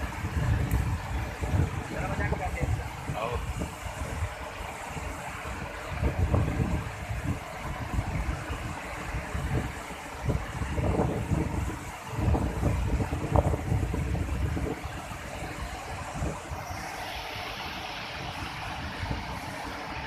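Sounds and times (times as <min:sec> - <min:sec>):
waterfall and rapids rushing: 0:00.0 - 0:20.0
wind buffeting microphone: 0:00.0 - 0:20.0.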